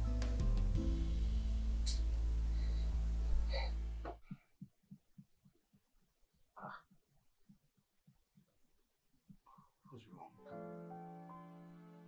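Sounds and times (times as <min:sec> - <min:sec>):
background music: 0:00.0 - 0:04.0, 0:10.2 - 0:12.0
soft low thuds like heartbeat: 0:00.2 - 0:05.9.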